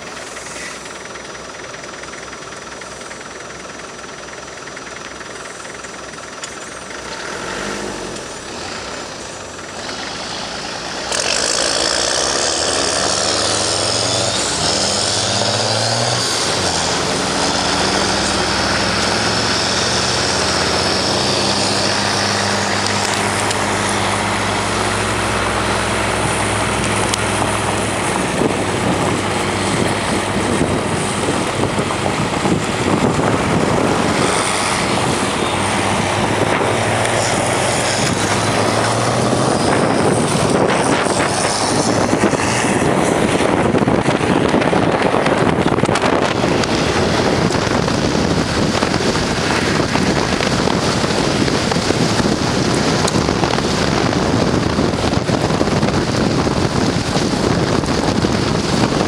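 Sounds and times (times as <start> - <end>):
tracked vehicle engines running: 0.0 - 59.0
vehicle tracks on gravel: 6.4 - 59.0.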